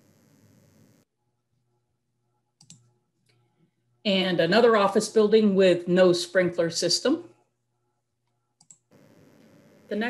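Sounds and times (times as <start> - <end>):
computer mouse clicks: 2.6 - 3.4, 8.6 - 8.8.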